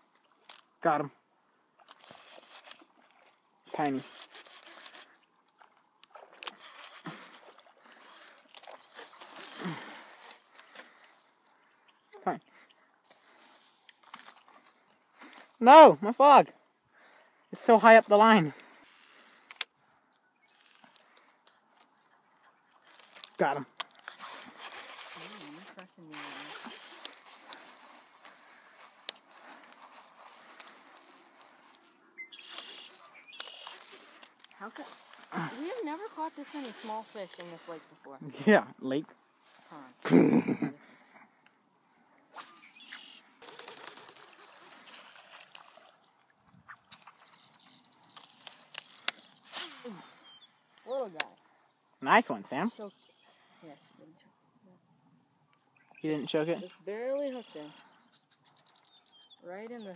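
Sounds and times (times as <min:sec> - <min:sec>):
grass rustling: 0:00.0 - 0:19.7, 0:20.5 - 0:54.0
insects trilling: 0:00.0 - 0:59.9
fishing rod handling noise: 0:01.8 - 0:11.2, 0:13.1 - 0:15.6, 0:18.2 - 0:19.8, 0:20.5 - 0:37.8, 0:42.3 - 0:46.0, 0:46.6 - 0:50.2
rustling: 0:20.6 - 0:38.1, 0:43.4 - 0:47.3
person muttering: 0:40.0 - 0:40.9.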